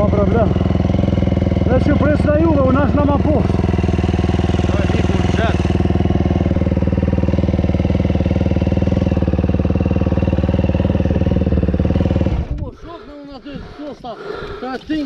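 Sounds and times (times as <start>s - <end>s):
dirt bike engine idling: 0.0s - 15.0s.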